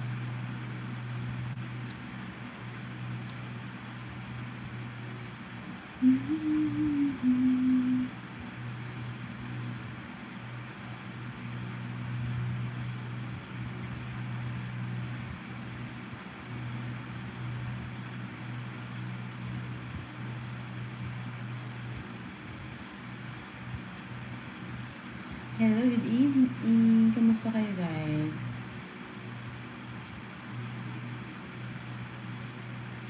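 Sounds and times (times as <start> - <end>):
low mechanical hum: 0.0 - 33.0.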